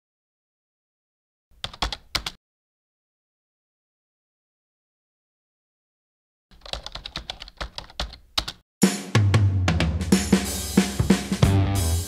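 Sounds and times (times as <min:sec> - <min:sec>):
keyboard typing clicks: 0:01.6 - 0:02.4, 0:06.6 - 0:08.6
loud drum hit: 0:08.8 - 0:12.0.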